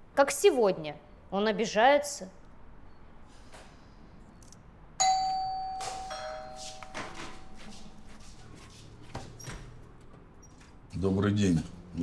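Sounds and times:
two-note doorbell chime: 0:05.0 - 0:07.7.

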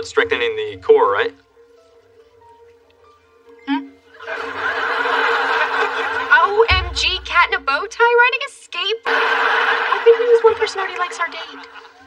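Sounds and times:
studio audience laughing: 0:04.2 - 0:06.7, 0:09.1 - 0:12.0
woman speaking: 0:06.4 - 0:09.0, 0:10.1 - 0:11.6.

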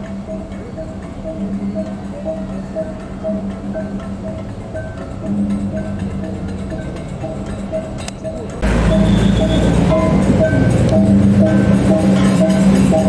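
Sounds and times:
processional gamelan playing: 0:00.0 - 0:13.0
low rumble: 0:08.6 - 0:13.0.

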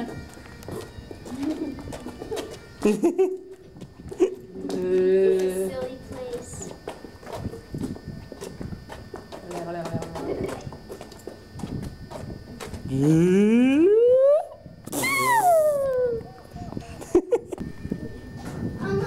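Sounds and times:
footsteps on stone paving: 0:00.0 - 0:13.0
toddler squealing: 0:14.9 - 0:16.3.

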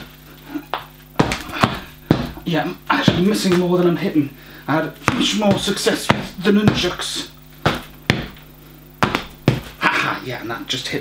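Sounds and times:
balls thumping punching bag: 0:00.7 - 0:03.9, 0:05.0 - 0:09.8.

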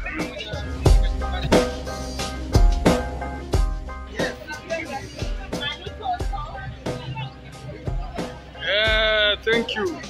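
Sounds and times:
background music with a beat: 0:00.0 - 0:10.0.

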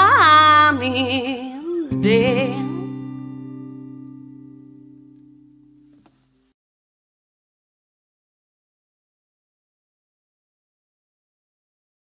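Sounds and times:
woman singing with vibrato: 0:00.0 - 0:03.0
guitar chord ringing: 0:01.9 - 0:06.4.

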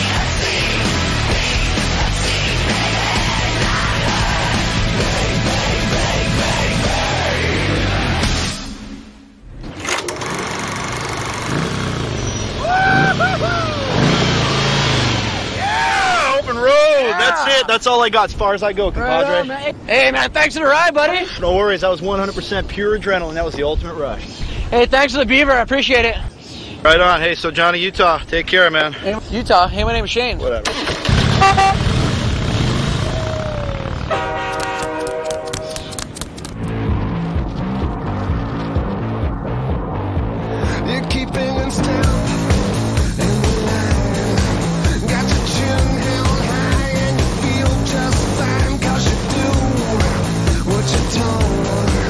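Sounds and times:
motorcycle engine revving: 0:09.6 - 0:15.6, 0:30.7 - 0:35.6
man calling out: 0:15.8 - 0:18.0
multi-tone horn chord: 0:31.2 - 0:32.0, 0:34.1 - 0:35.8
rapid sharp clicks: 0:34.5 - 0:36.8
slowly falling tone: 0:36.7 - 0:42.5.

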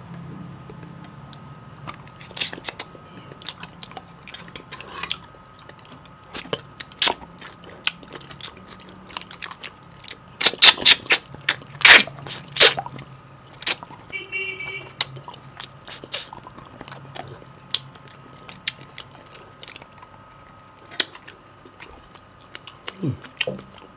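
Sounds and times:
wet eating mouth sounds: 0:00.7 - 0:04.3, 0:05.1 - 0:23.9.

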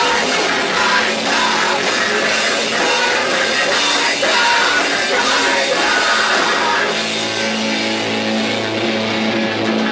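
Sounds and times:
drum kit: 0:00.0 - 0:09.9
electric guitars holding low note: 0:00.0 - 0:09.9.

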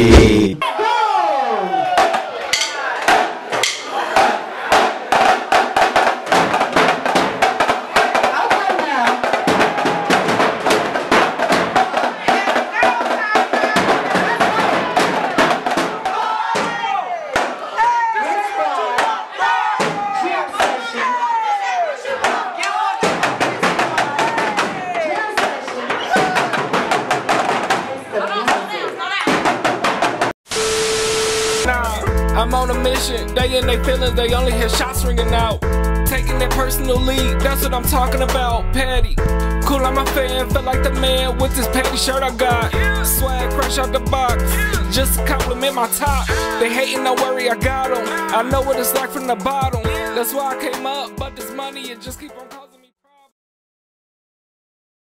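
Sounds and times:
voices and crowd noise: 0:00.0 - 0:29.7
marching drums with sticks: 0:02.0 - 0:16.8, 0:23.0 - 0:30.3, 0:39.6 - 0:50.6.

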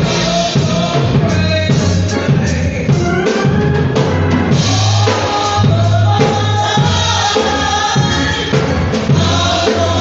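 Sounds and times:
group singing gospel song: 0:00.0 - 0:10.0
instrumental backing with bass: 0:00.0 - 0:10.0.

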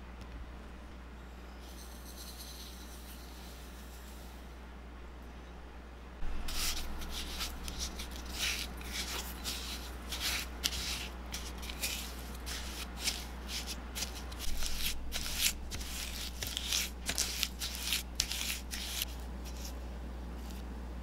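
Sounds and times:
spatula scraping in glass bowl: 0:06.3 - 0:19.1.

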